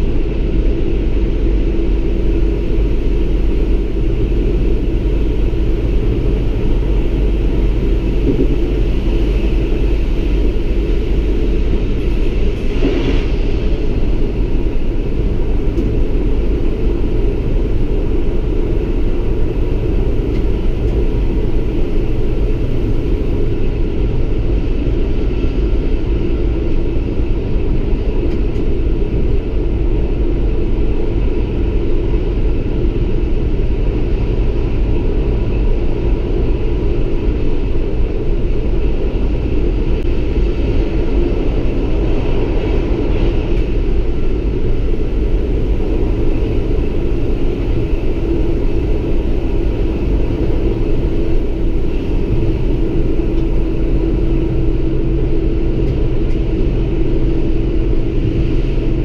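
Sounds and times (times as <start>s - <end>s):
faint constant hum: 0.0s - 59.0s
railcar rumble: 0.0s - 59.0s.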